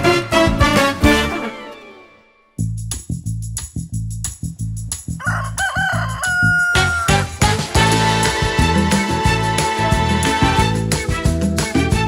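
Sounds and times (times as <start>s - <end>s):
music with steady beat: 0.0s - 1.4s, 2.6s - 12.0s
rooster crowing: 5.2s - 7.4s.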